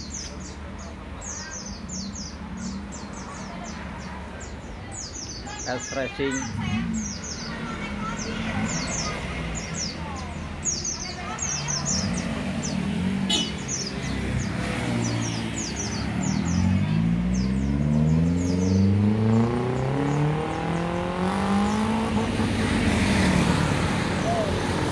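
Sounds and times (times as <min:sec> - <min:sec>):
birds chirping: 0:00.0 - 0:24.9
van engine revving: 0:11.3 - 0:24.9.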